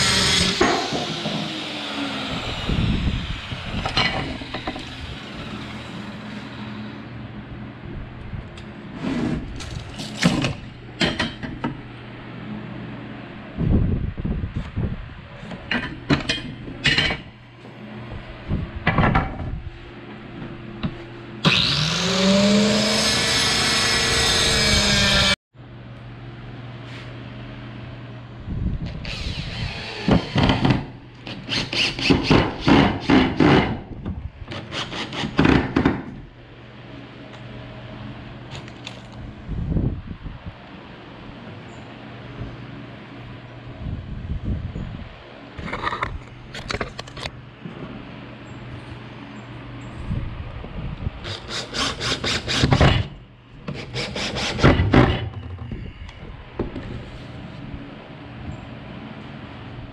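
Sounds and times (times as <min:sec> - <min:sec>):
circular saw cutting wood: 0:00.0 - 0:07.0, 0:21.4 - 0:25.4, 0:51.2 - 0:53.1, 0:53.7 - 0:55.4.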